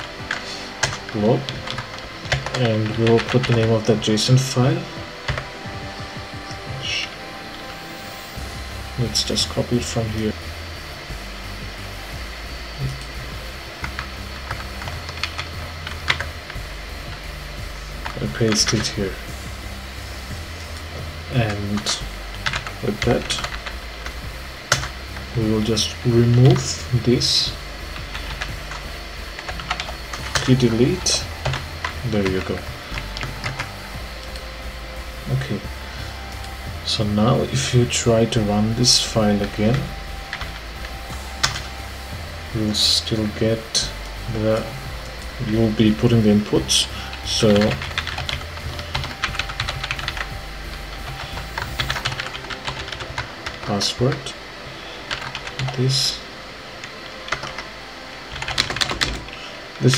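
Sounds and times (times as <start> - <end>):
keyboard typing: 0.0 - 4.0, 5.2 - 7.2, 13.8 - 17.3, 20.7 - 27.0, 27.9 - 34.5, 37.4 - 42.0, 45.4 - 54.2, 55.1 - 55.9, 57.2 - 57.7, 58.3 - 59.4
background music: 0.0 - 59.9
low steady hum: 0.0 - 59.9.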